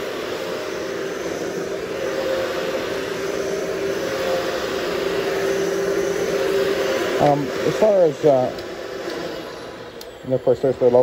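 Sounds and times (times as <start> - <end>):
vacuum cleaner running: 0.0 - 11.0.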